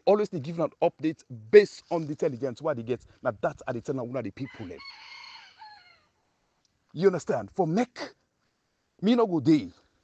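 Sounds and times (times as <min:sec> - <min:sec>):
faint rooster crowing: 0:04.4 - 0:06.2.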